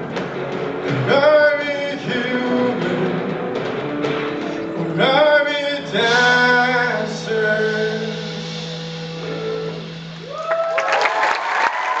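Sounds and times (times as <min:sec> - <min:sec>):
audience cheering and applauding: 0:10.2 - 0:12.0
whoops: 0:10.2 - 0:12.0.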